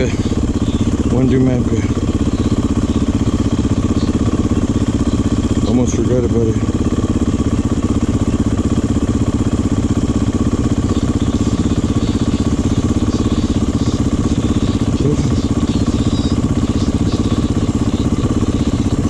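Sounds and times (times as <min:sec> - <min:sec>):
dirt bike engine idling: 0:00.0 - 0:19.0.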